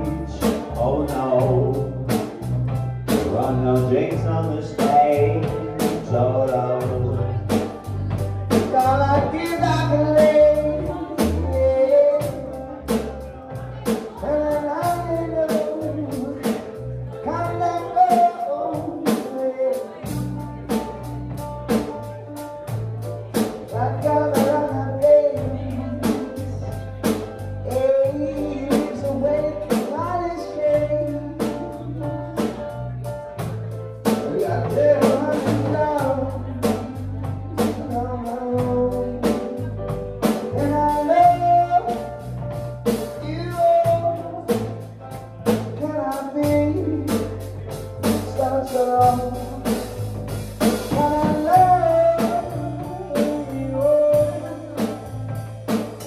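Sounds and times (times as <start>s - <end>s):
drum kit beat: 0.0s - 56.0s
electric bass guitar line: 0.0s - 56.0s
keyboard: 0.0s - 56.0s
live band playing: 0.0s - 56.0s
person singing: 0.0s - 56.0s
drum and cymbal hits: 46.4s - 56.0s.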